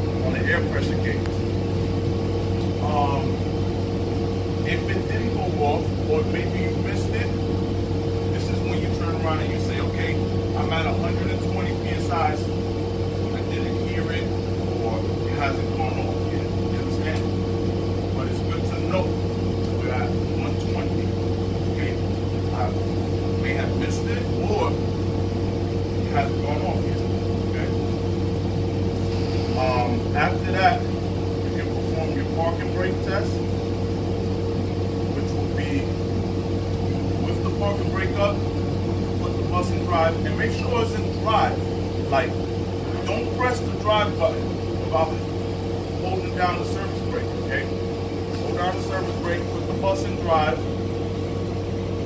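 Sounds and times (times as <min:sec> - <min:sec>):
bus engine idling: 0:00.0 - 0:52.0.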